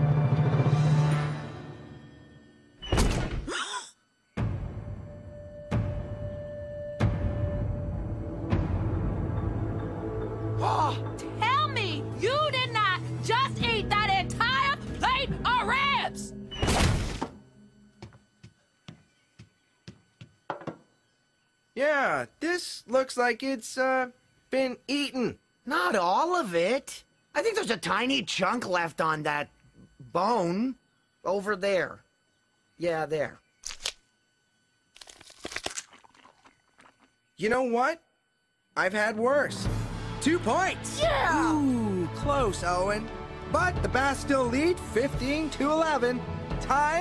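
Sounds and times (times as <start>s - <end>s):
cartoon chewing chomps: 35.0s - 37.1s.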